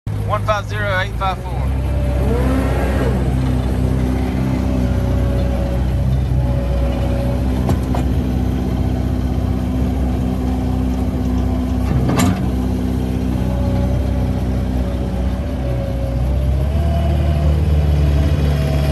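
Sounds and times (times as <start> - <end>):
diesel engine running: 0.1 - 18.9.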